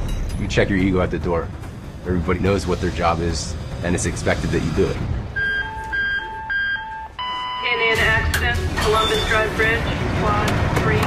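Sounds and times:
firehouse alert tones alternating: 5.3s - 10.9s.

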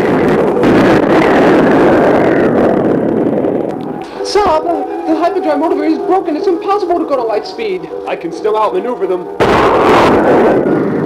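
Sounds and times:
spaceship engine roar: 0.0s - 11.0s.

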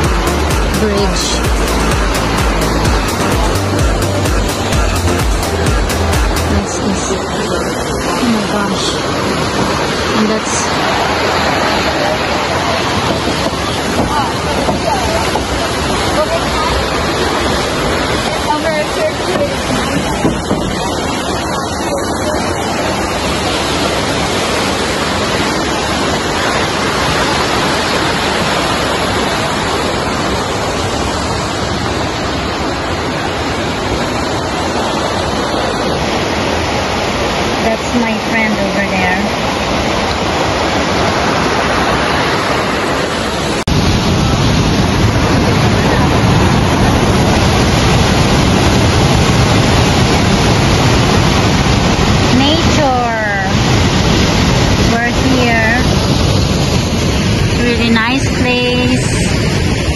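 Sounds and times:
creek water rushing through canyon: 0.0s - 59.9s.

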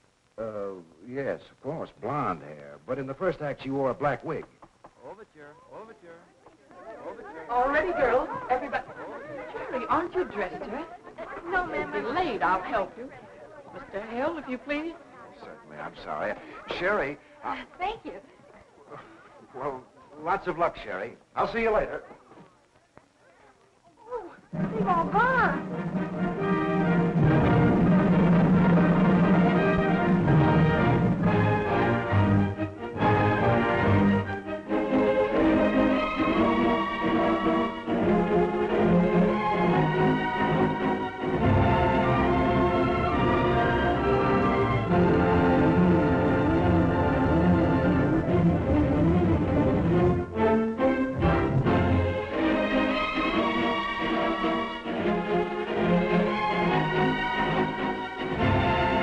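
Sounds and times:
orchestra playing: 24.5s - 59.0s.

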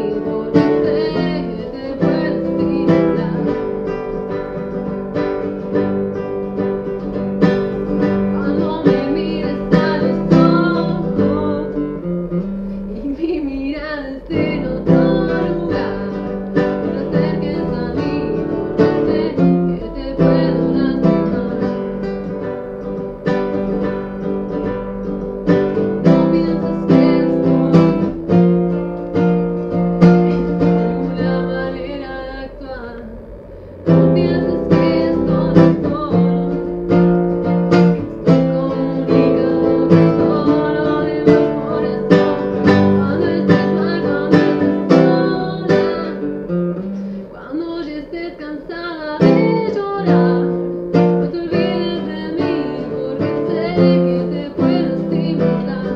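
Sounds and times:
acoustic guitar strumming: 0.0s - 55.9s
woman singing: 0.0s - 55.9s.

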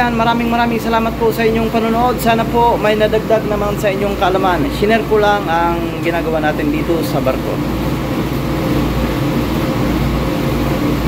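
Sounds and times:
ship machinery humming: 0.0s - 11.0s.

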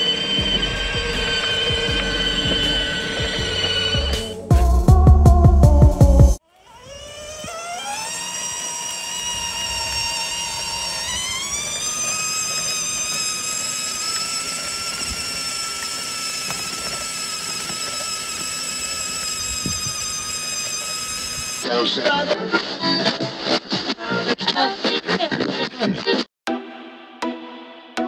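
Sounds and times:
electric motor whining: 0.0s - 4.5s, 6.3s - 21.6s.

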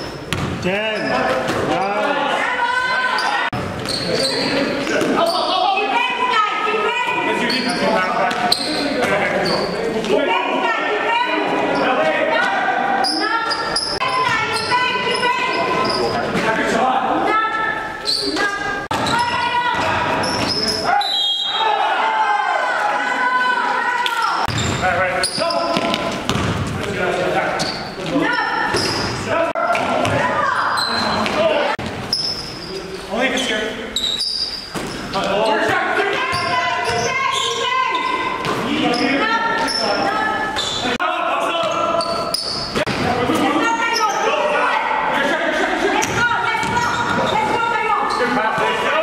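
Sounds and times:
basketball bouncing on hardwood: 0.3s - 0.6s, 25.8s - 26.8s.

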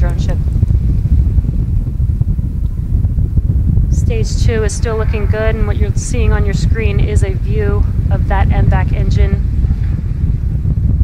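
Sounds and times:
rocket engine low rumble: 0.0s - 11.0s.

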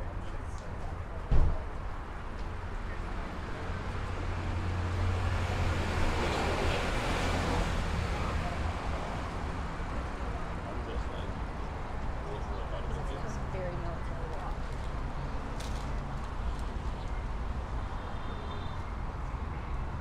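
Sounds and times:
city background noise: 0.0s - 20.0s.

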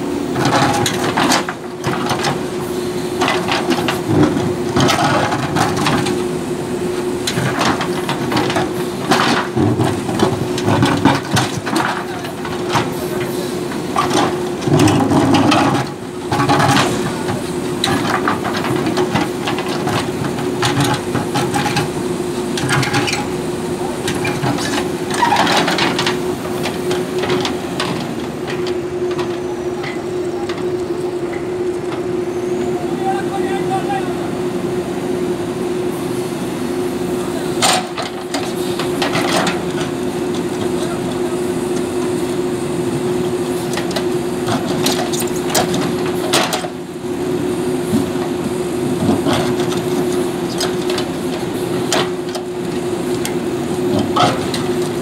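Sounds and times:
diesel engine droning: 0.0s - 55.0s.

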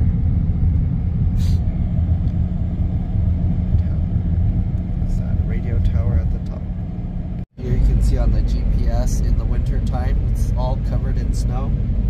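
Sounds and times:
tyre and road rumble: 0.0s - 12.0s
wind noise in car cabin: 0.0s - 12.0s.

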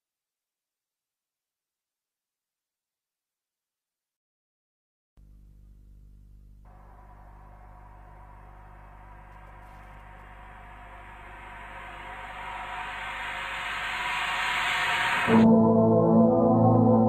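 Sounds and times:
faint low drone: 5.2s - 17.0s
white-noise riser: 6.7s - 15.8s.

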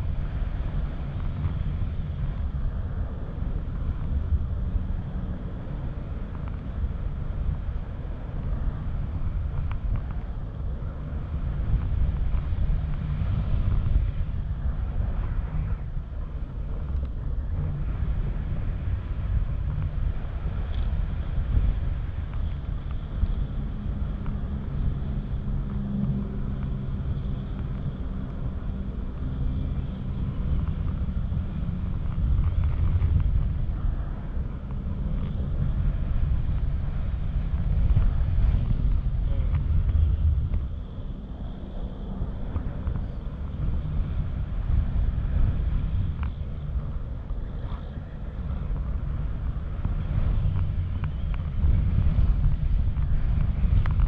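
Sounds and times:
wind rushing over microphone: 0.0s - 54.0s.

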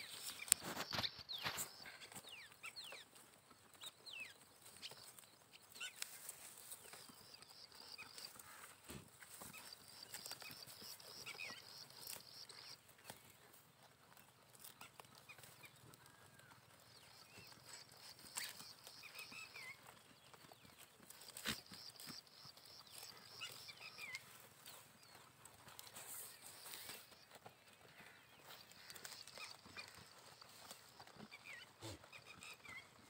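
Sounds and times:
goats chewing grass: 0.0s - 33.0s.

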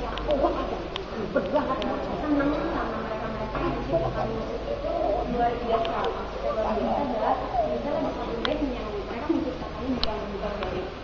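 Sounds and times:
muffled voices talking: 0.0s - 11.0s.

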